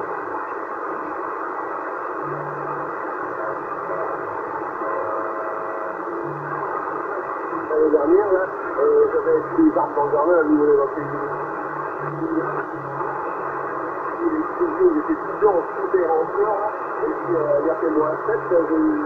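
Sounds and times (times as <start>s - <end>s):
faint radio tone: 0.0s - 19.0s
radio static hiss: 0.0s - 19.0s
radio voice: 7.6s - 13.4s, 14.2s - 19.0s.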